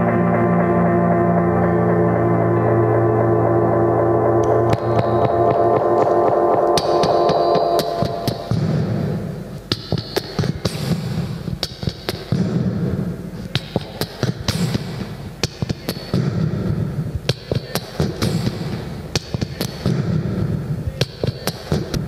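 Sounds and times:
low tone: 0:00.0 - 0:09.7
beatboxing into microphone: 0:09.7 - 0:22.0.

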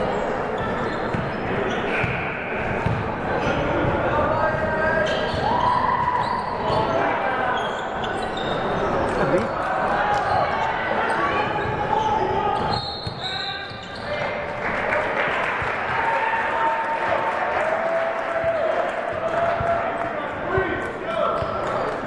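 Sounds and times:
basketball bouncing on hardwood: 0:02.8 - 0:03.0.

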